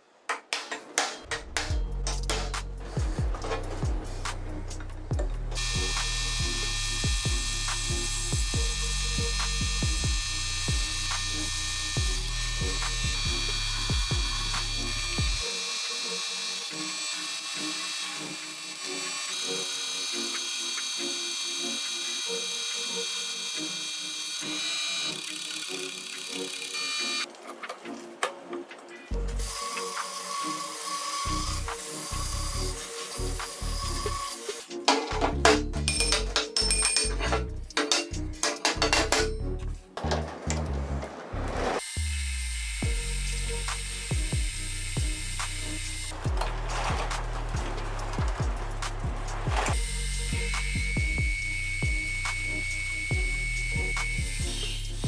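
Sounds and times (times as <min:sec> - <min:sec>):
background music: 0:00.8 - 0:55.0
drill press boring steel: 0:05.6 - 0:27.2, 0:29.4 - 0:34.8, 0:49.7 - 0:55.0.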